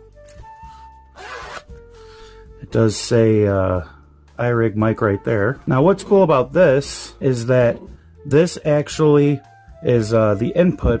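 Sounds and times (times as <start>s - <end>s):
zipper pulled shut: 1.1s - 1.8s.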